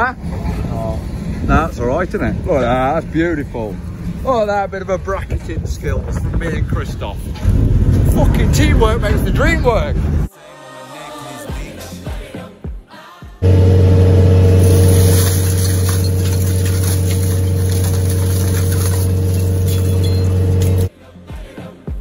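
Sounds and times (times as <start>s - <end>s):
background music: 10.3s - 14.4s, 17.8s - 22.0s
machine droning with hum: 13.4s - 20.9s.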